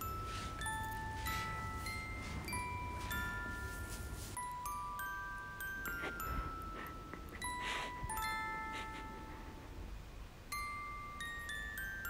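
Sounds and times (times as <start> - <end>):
bell-like chiming notes: 0.0 - 9.8.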